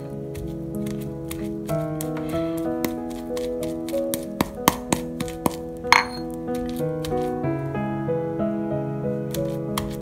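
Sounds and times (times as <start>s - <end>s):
background music: 0.0s - 10.0s
stone pestle clinking in mortar: 5.9s - 6.4s.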